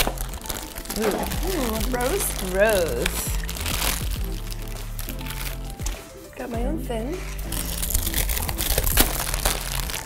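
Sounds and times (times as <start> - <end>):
packaging crinkling and rustling: 0.0 - 6.4, 7.2 - 10.0.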